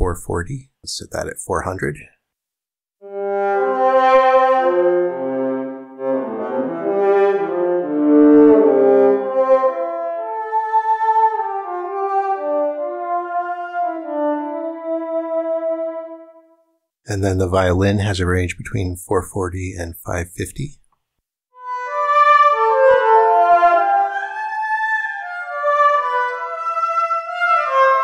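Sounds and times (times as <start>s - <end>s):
synthesized bowed string notes: 3.1s - 16.3s, 21.6s - 28.0s.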